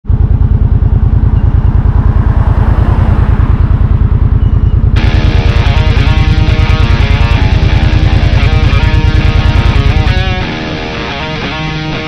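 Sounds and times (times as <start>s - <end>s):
motorcycle engine idling: 0.1s - 12.0s
guitar music: 5.0s - 12.0s.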